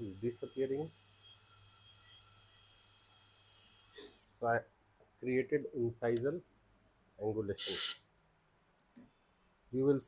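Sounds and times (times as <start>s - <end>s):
dental drill whining: 0.0s - 4.2s, 7.6s - 8.0s.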